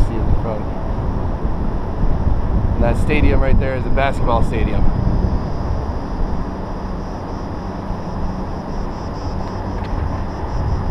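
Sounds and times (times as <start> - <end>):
distant traffic: 0.0 - 10.9
wind on microphone: 0.0 - 10.9.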